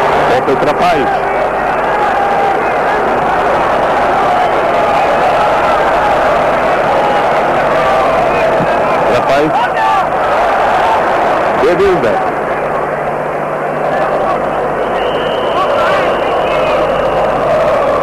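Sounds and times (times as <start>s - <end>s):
stadium crowd din: 0.0s - 18.0s
supporters chanting: 1.1s - 11.6s, 13.8s - 18.0s.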